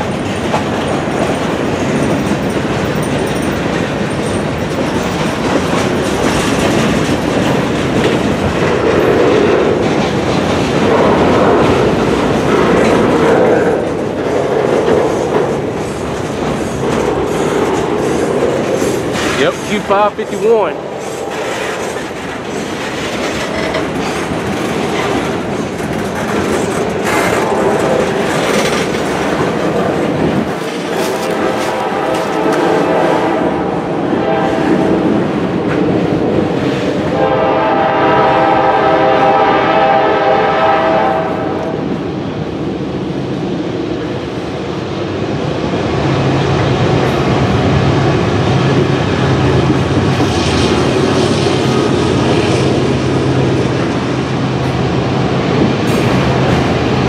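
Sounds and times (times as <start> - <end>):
low drone of diesel locomotives: 0.0 - 57.0
diesel locomotive horn: 27.2 - 28.2, 31.1 - 35.0, 37.1 - 41.8.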